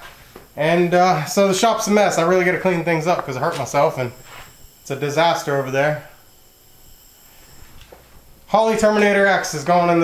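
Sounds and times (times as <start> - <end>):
low hum: 0.0 - 10.0
thin high whine: 0.0 - 10.0.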